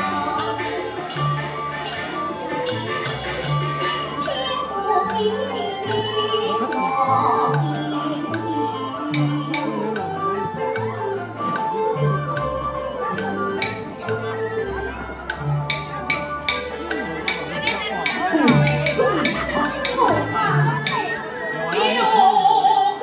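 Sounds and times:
sharp percussion strikes: 0.0 - 6.9, 9.1 - 14.3, 14.9 - 21.2
opera instrumental accompaniment: 0.0 - 23.0.

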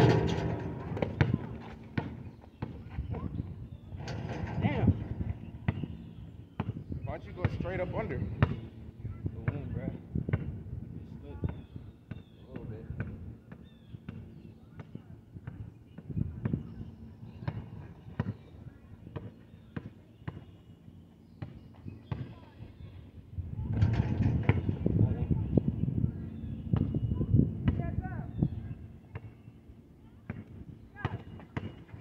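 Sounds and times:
basketball bouncing on asphalt: 1.0 - 3.3, 5.6 - 7.6, 10.3 - 10.5, 11.4 - 16.7, 19.1 - 20.6, 21.3 - 22.4, 29.1 - 29.4, 30.1 - 32.0.

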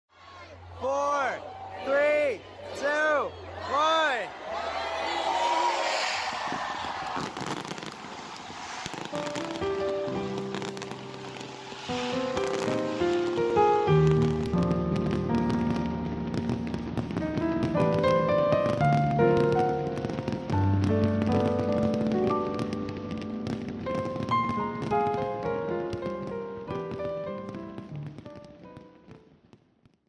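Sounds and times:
fireworks crackling and bursting: 3.0 - 30.0.

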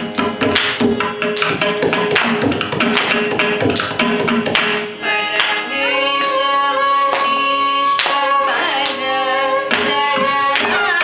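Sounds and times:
hand drum rhythmic strokes: 0.0 - 4.8
violin melody: 5.0 - 11.0.

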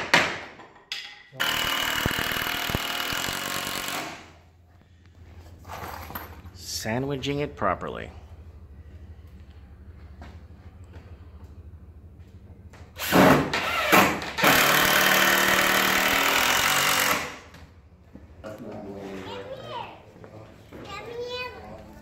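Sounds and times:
cordless drill driving a screw: 1.4 - 4.0, 13.7 - 17.3.

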